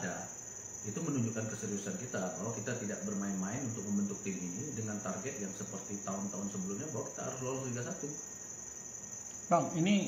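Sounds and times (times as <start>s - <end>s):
high-pitched insect trill: 0.0s - 10.0s.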